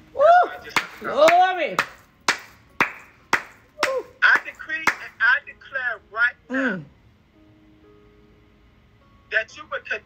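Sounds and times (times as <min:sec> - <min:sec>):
person clapping hands: 0:00.6 - 0:05.2.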